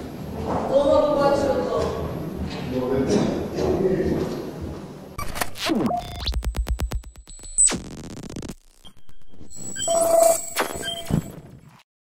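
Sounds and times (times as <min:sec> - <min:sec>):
steady electronic tone: 0:05.2 - 0:11.4
static-like crackle: 0:05.2 - 0:11.8
short beeps: 0:08.9 - 0:11.3.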